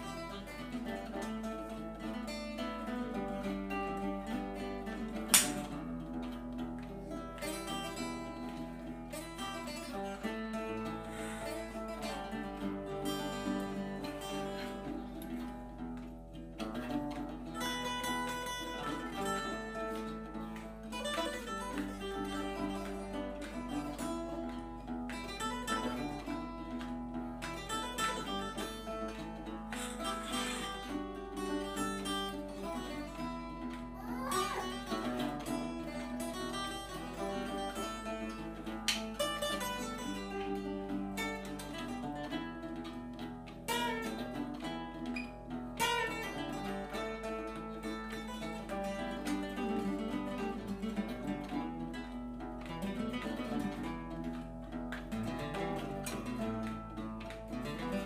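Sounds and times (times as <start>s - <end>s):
nylon-string guitar: 0.0s - 58.0s
steel-string acoustic guitar: 0.0s - 58.0s.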